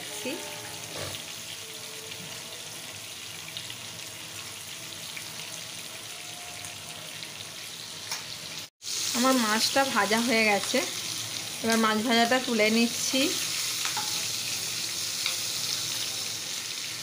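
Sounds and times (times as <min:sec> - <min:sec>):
fish sizzling in hot oil: 0:00.0 - 0:17.0.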